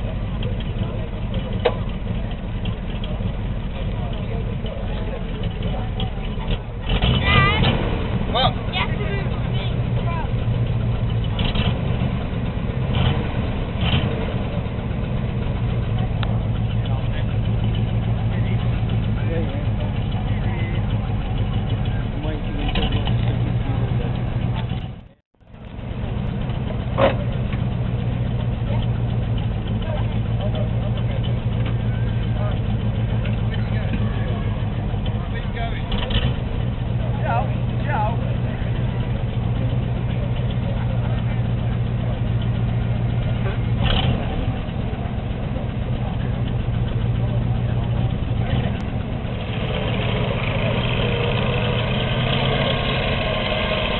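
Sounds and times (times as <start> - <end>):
vehicle engine running: 0.0 - 53.9
voices: 0.0 - 53.9.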